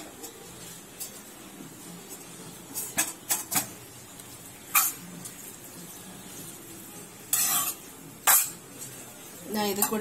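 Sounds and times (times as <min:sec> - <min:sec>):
spoon scraping a metal pan: 0:04.7 - 0:05.1, 0:07.2 - 0:08.6.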